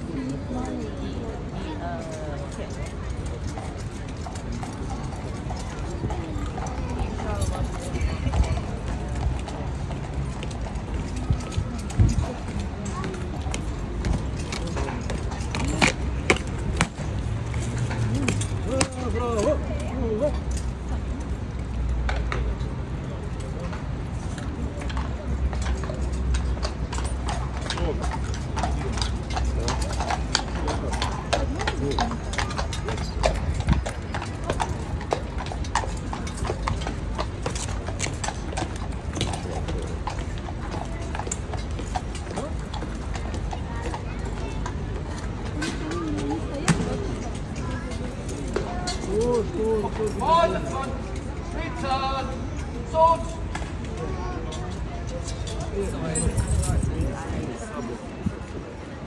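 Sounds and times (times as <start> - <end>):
crowd chatter: 0.0 - 59.0
hooves clip-clopping on pavement: 0.0 - 59.0.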